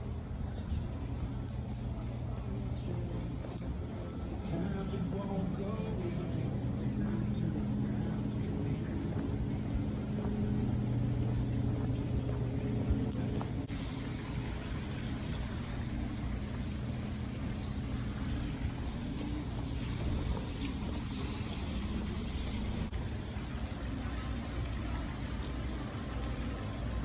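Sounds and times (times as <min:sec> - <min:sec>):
faint voices: 0:00.0 - 0:13.7
low machine hum: 0:00.0 - 0:27.0.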